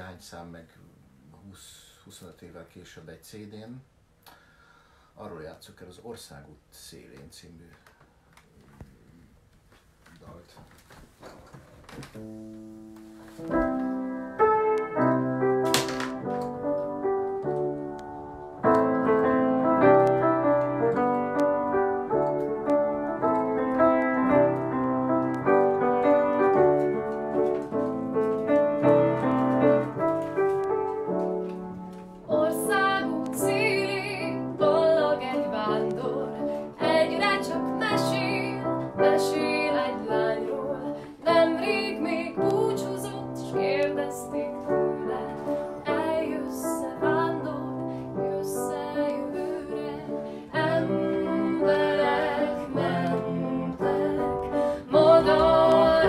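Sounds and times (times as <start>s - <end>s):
grand piano playing chords: 12.2s - 56.0s
woman singing: 32.3s - 56.0s.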